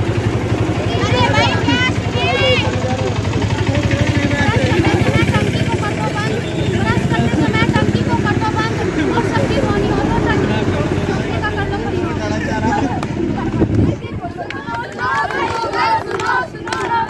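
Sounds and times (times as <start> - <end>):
group of people talking: 0.0 - 17.0
low engine rumble: 0.0 - 17.0.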